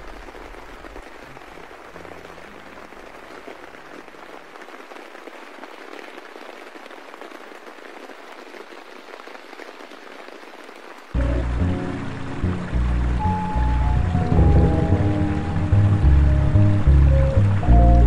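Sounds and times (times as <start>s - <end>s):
rain patter: 0.0s - 18.0s
lo-fi hip hop beat: 11.2s - 18.0s
low bass notes: 11.2s - 18.0s.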